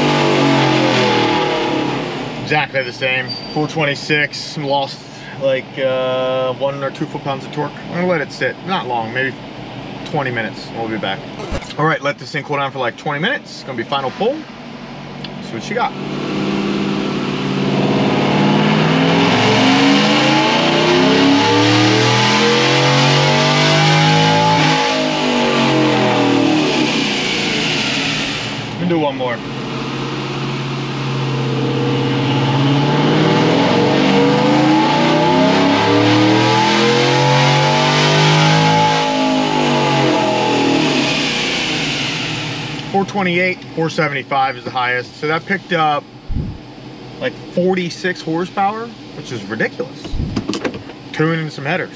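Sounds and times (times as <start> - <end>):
engine revving at full throttle: 0.0 - 2.7, 15.7 - 42.9, 46.2 - 46.7, 50.1 - 50.5.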